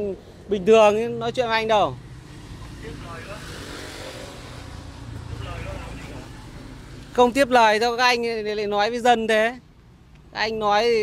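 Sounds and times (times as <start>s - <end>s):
rumble of road traffic: 0.0s - 11.0s.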